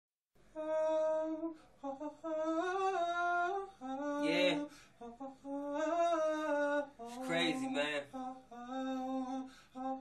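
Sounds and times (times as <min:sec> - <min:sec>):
person humming a slow melody: 0:00.5 - 0:07.2.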